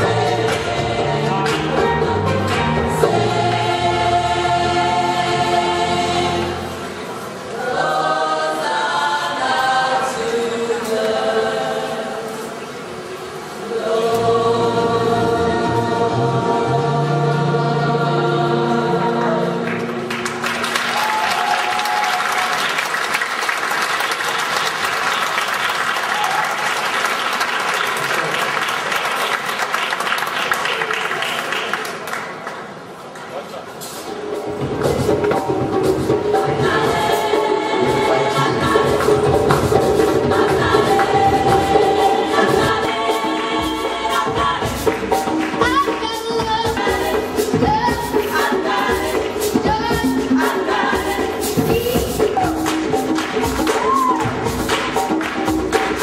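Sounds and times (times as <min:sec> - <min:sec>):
gospel choir singing: 0:00.0 - 0:21.3, 0:34.8 - 0:56.0
hand drum beat: 0:34.4 - 0:56.0.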